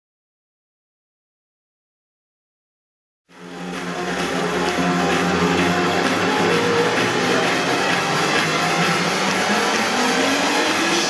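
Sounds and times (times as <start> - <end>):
electronic dance music: 3.3 - 11.0.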